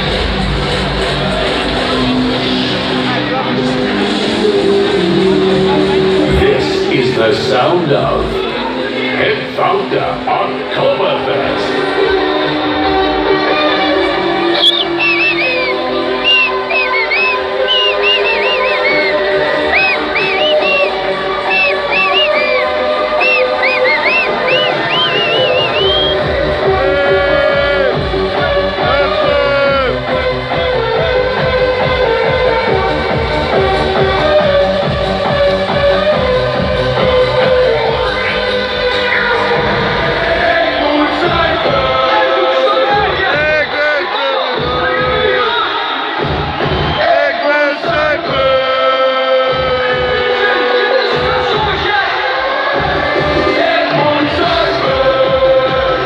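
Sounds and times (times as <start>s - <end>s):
electronic dance music: 0.0s - 56.0s.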